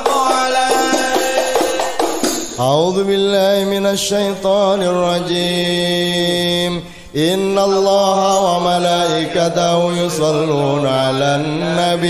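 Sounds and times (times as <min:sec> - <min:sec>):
devotional chanting in held notes: 0:00.0 - 0:12.0.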